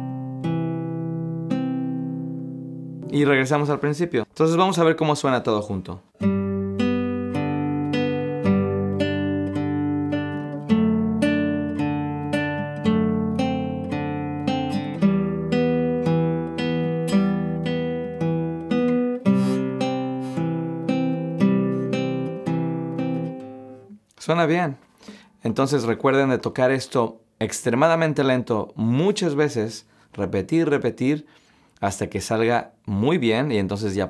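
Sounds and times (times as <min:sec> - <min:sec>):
fingerpicked classical guitar arpeggios: 0:00.0 - 0:03.3, 0:06.1 - 0:23.9.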